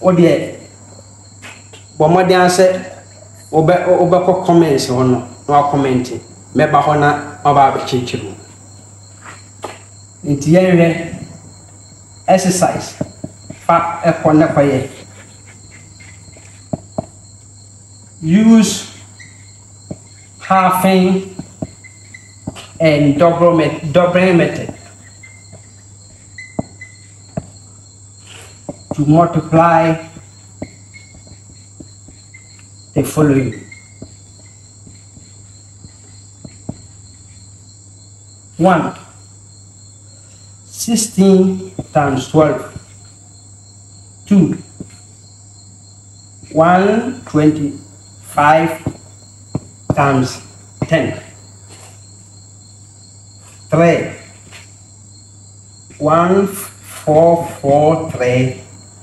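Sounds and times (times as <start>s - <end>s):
steady high-pitched whine: 0.0s - 59.0s
marker squeaking on whiteboard: 12.7s - 18.1s, 18.8s - 37.4s, 41.6s - 43.2s.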